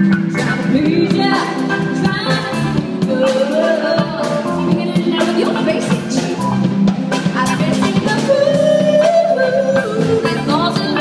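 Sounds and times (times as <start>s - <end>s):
live pop band playing: 0.0s - 11.0s.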